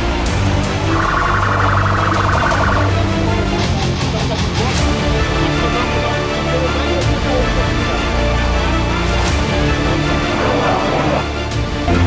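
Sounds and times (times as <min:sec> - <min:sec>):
emergency siren warbling: 0:00.8 - 0:03.3
low hum: 0:00.8 - 0:03.3.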